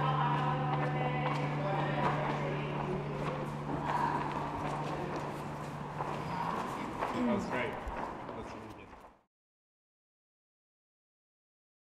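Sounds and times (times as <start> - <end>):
quiet voices: 0.0 - 8.9.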